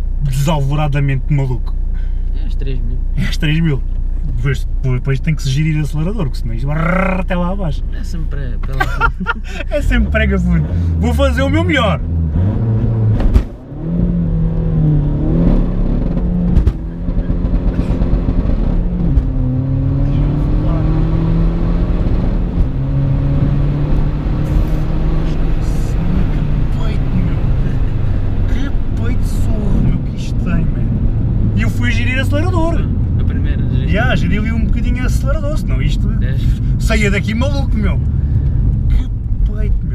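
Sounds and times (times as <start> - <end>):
turbodiesel car accelerating hard: 9.1 - 39.9.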